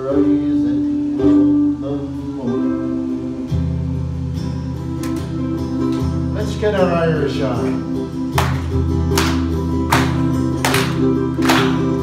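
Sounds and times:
person singing folk ballad: 0.0 - 4.3
acoustic guitars playing: 0.0 - 12.0.

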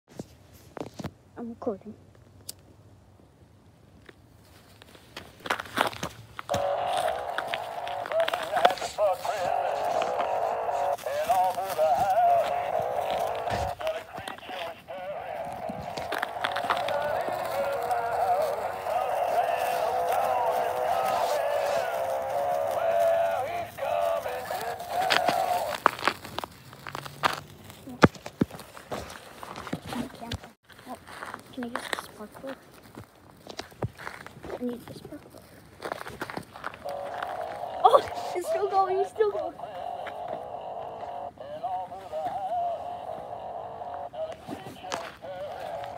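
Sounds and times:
clicks and crackles: 4.8 - 37.9
toy song through tinny speaker: 6.5 - 25.7, 36.9 - 45.9.

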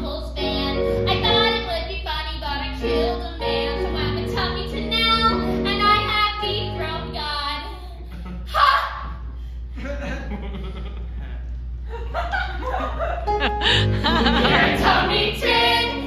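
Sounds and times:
several voices singing: 14.2 - 16.0.

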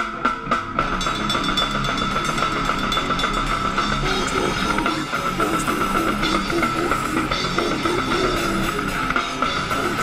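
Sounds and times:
death metal band playing: 0.0 - 10.0
drum kit hits: 0.0 - 10.0.

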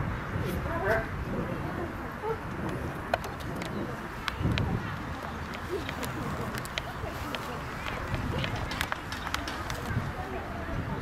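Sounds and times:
distant voices: 0.0 - 11.0
outdoor background noise: 0.0 - 11.0.

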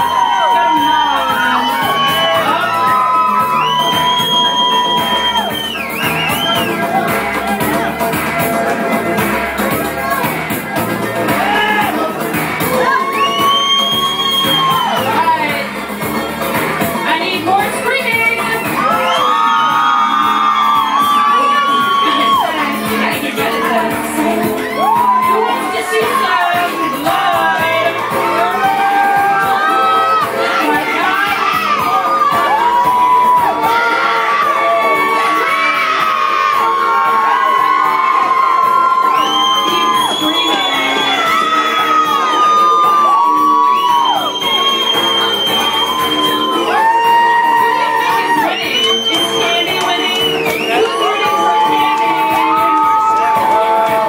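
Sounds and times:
crowd shouting and whooping: 0.0 - 54.0
loud bar music: 0.0 - 54.0.

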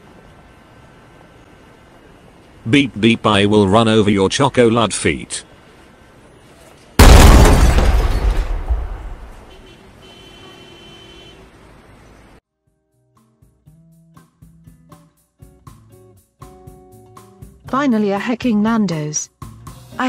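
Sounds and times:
loud crash: 7.0 - 9.5.

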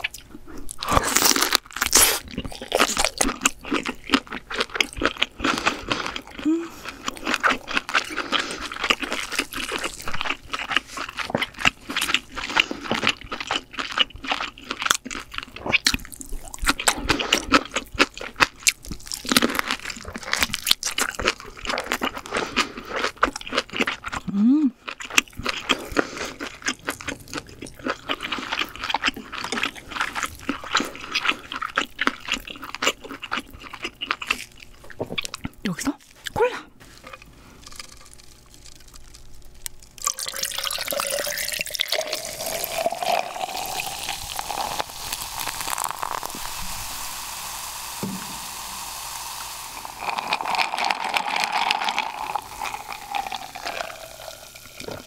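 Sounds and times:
close chewing with mouth clicks: 0.0 - 36.4.

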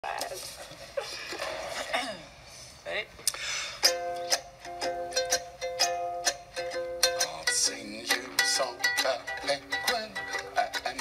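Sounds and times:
ukulele strumming chords: 3.8 - 11.0.

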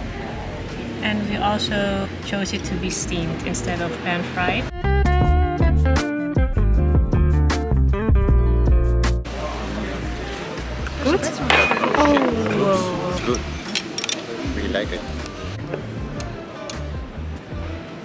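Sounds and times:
street and cafe ambience with voices: 0.0 - 4.8, 9.2 - 18.0
chopsticks and crockery clinking: 11.1 - 14.4.

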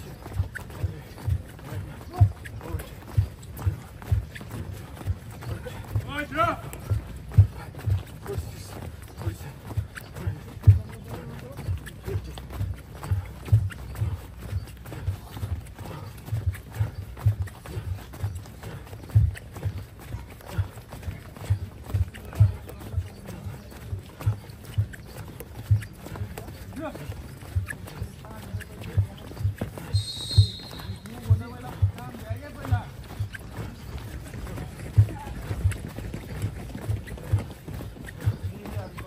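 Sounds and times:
running footsteps on grass: 0.0 - 39.0.

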